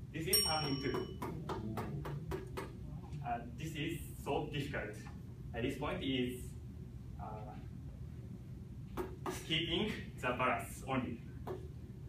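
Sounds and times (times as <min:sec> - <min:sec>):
low room hum: 0:00.0 - 0:12.0
hand tapping basketball: 0:00.5 - 0:02.8, 0:08.9 - 0:09.5, 0:11.4 - 0:11.7.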